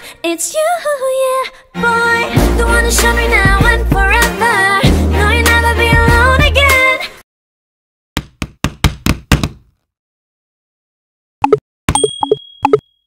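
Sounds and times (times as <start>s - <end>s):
thin high ding: 11.9s - 13.0s.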